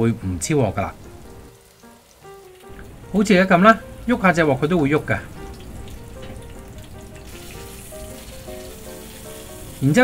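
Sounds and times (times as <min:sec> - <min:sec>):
pork chops sizzling in oil: 0:00.2 - 0:10.0.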